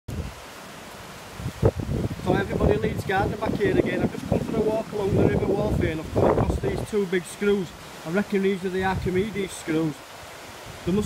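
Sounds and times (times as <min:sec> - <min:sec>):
wind rumbling on microphone: 0:00.1 - 0:00.6, 0:01.2 - 0:07.8, 0:08.7 - 0:09.6, 0:10.2 - 0:11.0.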